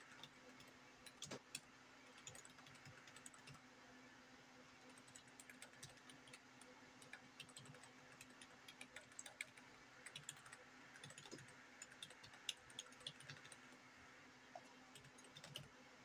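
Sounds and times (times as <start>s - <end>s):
computer keyboard typing: 0.0s - 3.6s, 4.9s - 13.7s, 14.6s - 15.7s.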